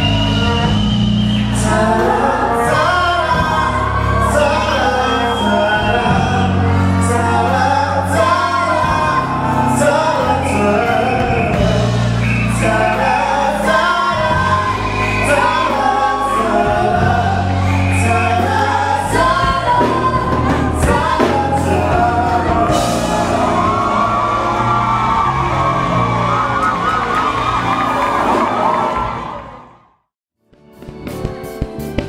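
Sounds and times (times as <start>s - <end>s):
backing track with bass line: 0.0s - 29.4s
man and woman singing duet: 1.4s - 25.8s.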